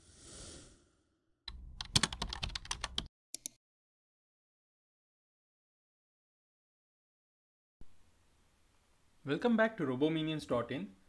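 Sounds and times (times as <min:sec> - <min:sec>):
keyboard typing: 0:01.5 - 0:03.6.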